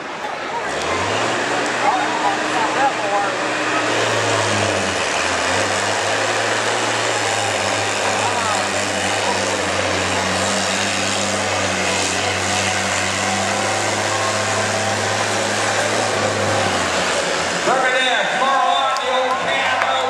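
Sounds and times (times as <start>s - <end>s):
diesel truck engine droning: 0.0s - 20.0s.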